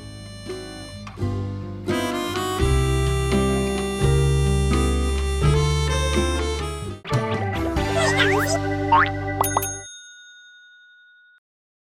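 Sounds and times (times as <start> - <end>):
bell-like chime: 9.4 - 11.4.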